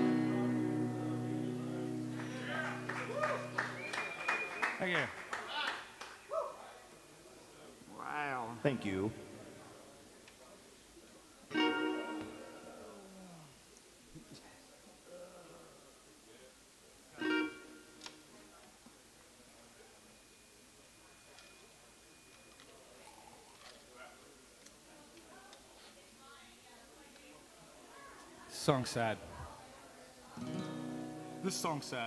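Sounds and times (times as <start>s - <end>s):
acoustic guitar strum: 0.0s - 2.9s, 30.4s - 31.9s
small audience clapping: 2.1s - 6.7s
shouts and whoops: 2.3s - 4.5s
high whistle: 3.1s - 4.8s.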